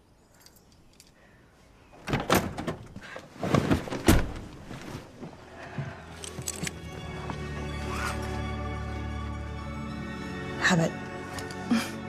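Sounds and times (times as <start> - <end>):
door knocks and clunks: 2.0 - 3.0.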